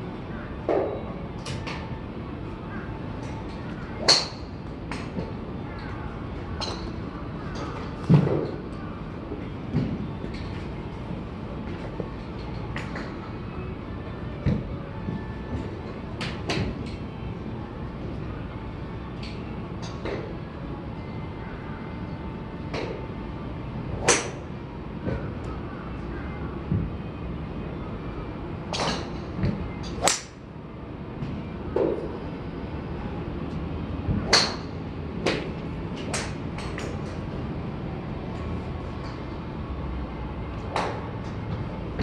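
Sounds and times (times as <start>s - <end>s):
golf club striking ball: 30.0s - 30.3s.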